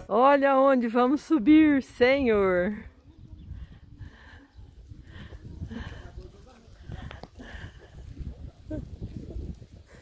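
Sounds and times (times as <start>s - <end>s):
wind rumble on microphone: 1.6s - 10.0s.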